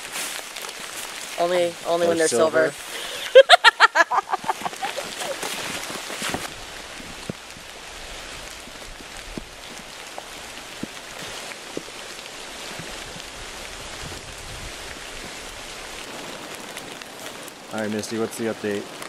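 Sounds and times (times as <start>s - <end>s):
steady rain falling: 0.0s - 19.0s
single raindrops striking close: 4.5s - 19.0s.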